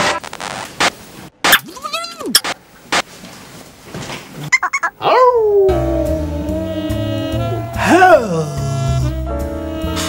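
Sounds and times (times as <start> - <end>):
dog yelping and howling: 4.8 - 6.5
saxophone music with bass: 5.5 - 10.0.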